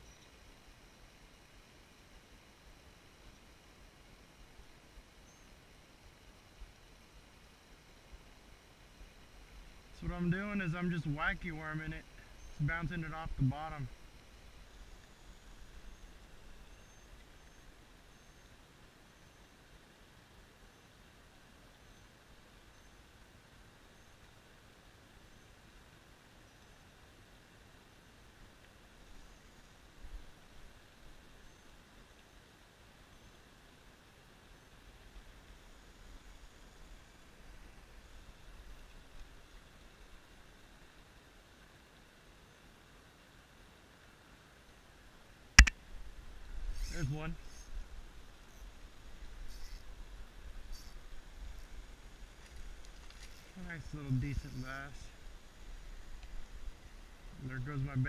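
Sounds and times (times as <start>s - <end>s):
faint high chirping: 0.0s - 0.4s, 5.2s - 5.6s, 12.2s - 12.7s.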